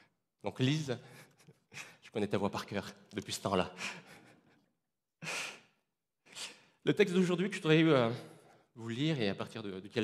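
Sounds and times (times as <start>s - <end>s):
man speaking: 6.9s - 10.0s.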